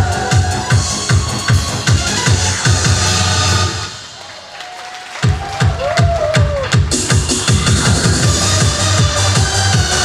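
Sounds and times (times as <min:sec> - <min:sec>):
electronic dance music: 0:00.0 - 0:04.5, 0:05.1 - 0:10.0
heavy kick drum beat: 0:05.2 - 0:10.0.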